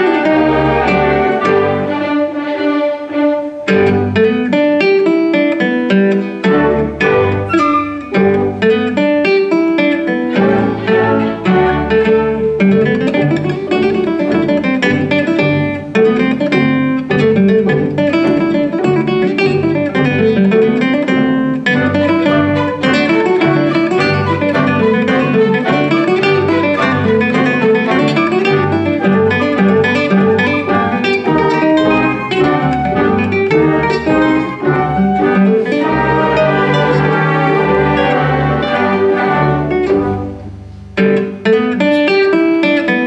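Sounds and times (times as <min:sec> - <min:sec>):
small orchestra with violin: 0:00.0 - 0:04.3, 0:06.2 - 0:08.7, 0:10.0 - 0:16.0, 0:21.6 - 0:41.0
classical guitar arpeggios: 0:00.0 - 0:43.0.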